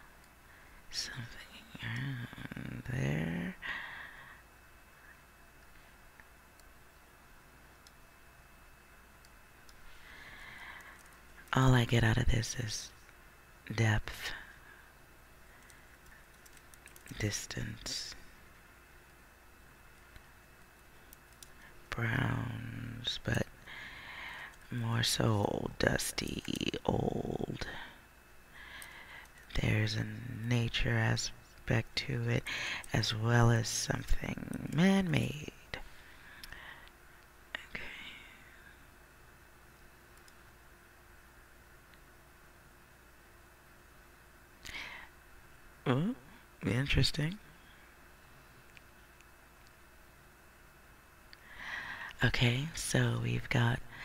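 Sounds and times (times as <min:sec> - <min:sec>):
soft hiss: 0:00.0 - 0:54.0
computer mouse clicks: 0:10.8 - 0:11.5, 0:15.6 - 0:17.2, 0:20.0 - 0:21.6, 0:40.2 - 0:40.4.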